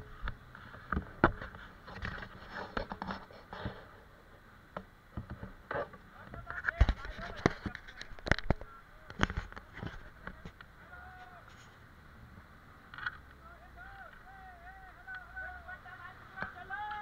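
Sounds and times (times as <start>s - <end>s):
indistinct voices: 13.1s - 17.0s.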